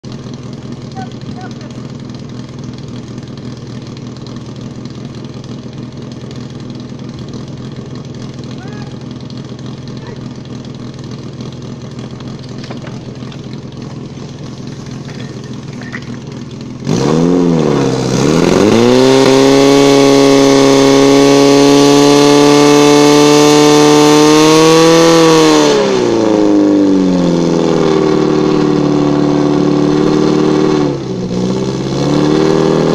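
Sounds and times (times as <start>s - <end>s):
pump engine running: 0.0s - 32.9s.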